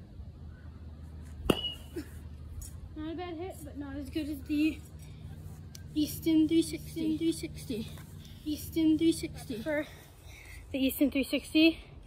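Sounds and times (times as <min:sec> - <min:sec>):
metal bat pinging a baseball: 0:01.4 - 0:02.1.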